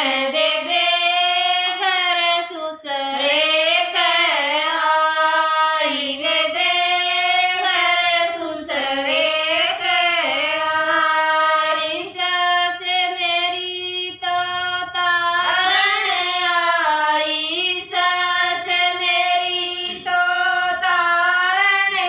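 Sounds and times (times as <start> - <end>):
women singing folk song: 0.0 - 22.0.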